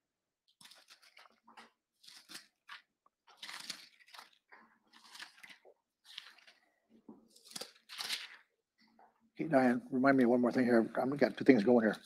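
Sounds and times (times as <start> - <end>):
book pages rustling: 0.5 - 8.5.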